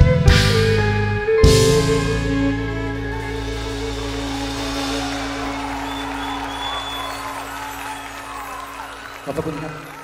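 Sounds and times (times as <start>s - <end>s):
rock band chord ringing: 0.1s - 9.2s
audience cheering: 3.2s - 10.0s.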